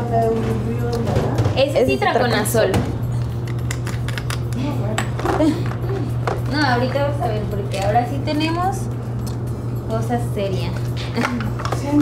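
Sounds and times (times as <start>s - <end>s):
steady low hum: 0.0s - 12.0s
utensils and dishes clinking: 10.4s - 12.0s.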